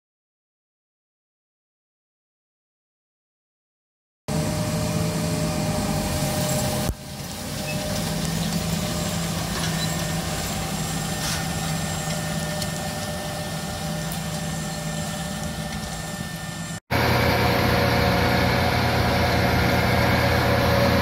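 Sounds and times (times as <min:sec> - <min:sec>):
tractor diesel engine running: 0:04.3 - 0:21.0.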